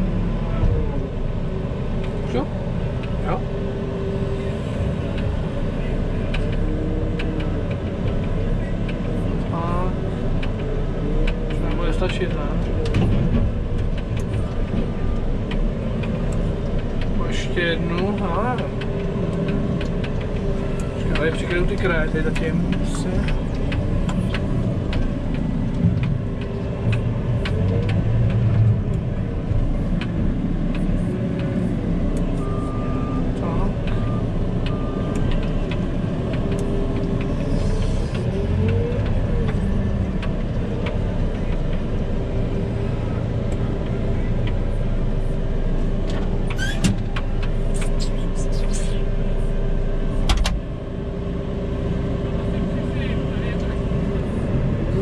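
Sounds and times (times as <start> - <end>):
diesel engine running: 0.0 - 55.0.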